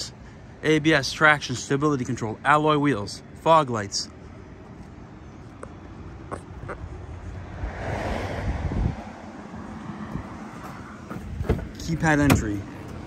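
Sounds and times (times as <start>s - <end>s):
wind rumbling on microphone: 6.5s - 12.4s.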